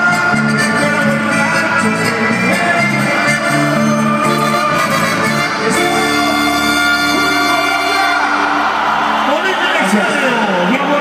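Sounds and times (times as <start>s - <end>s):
accordion and keyboard chord: 0.0s - 9.3s
crowd cheering and whooping: 3.6s - 11.0s.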